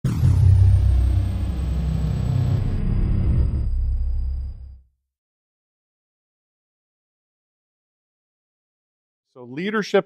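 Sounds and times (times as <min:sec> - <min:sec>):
high falling sweep: 0:00.0 - 0:04.7
deep steady rumble: 0:00.1 - 0:04.8.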